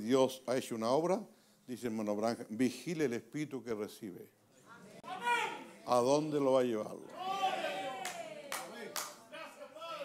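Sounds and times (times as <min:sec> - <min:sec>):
sharp hand claps: 0:08.0 - 0:09.2.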